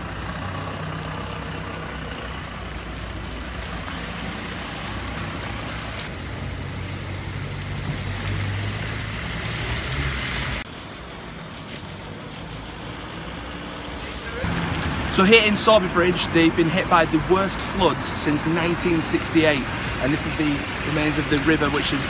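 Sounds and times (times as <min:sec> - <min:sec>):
tractor diesel engine running: 0:00.0 - 0:09.8, 0:10.6 - 0:22.0.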